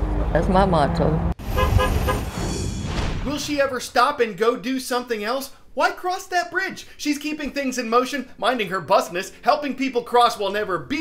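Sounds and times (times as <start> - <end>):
road traffic rumble: 0.0 - 2.5
car horn tooting: 1.4 - 2.4.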